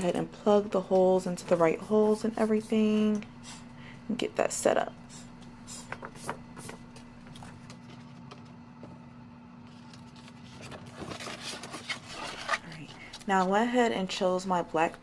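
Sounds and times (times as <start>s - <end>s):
steady low hum: 0.0s - 15.0s
fabric scrapes and rustles: 9.6s - 13.4s.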